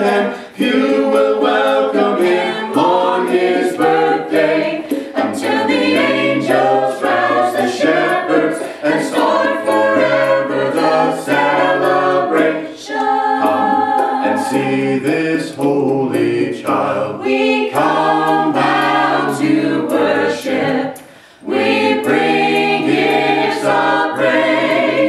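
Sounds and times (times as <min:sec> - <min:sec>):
a cappella group singing in harmony: 0:00.0 - 0:25.0.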